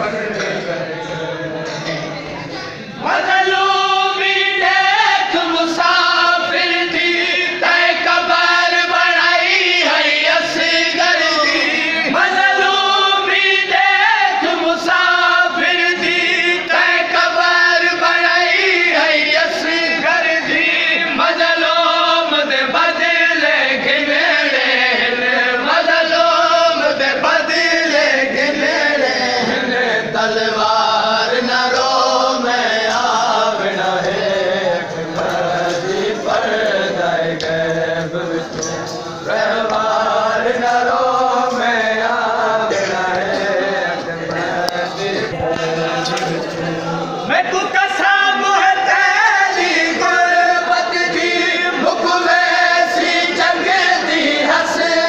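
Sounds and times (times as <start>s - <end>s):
men chanting in unison: 0.0s - 55.0s.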